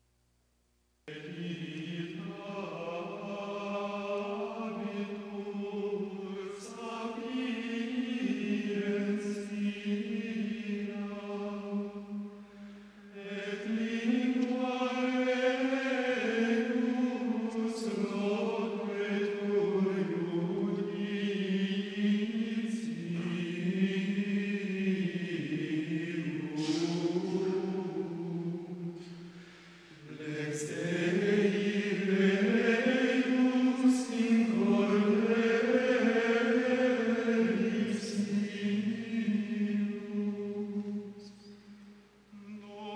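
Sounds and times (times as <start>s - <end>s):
voices singing slow chant: 1.1s - 42.9s.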